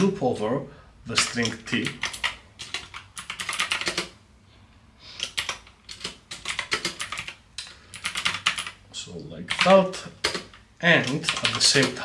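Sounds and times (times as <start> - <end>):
typing on computer keyboard: 1.1 - 4.2, 5.2 - 8.8, 9.5 - 12.0.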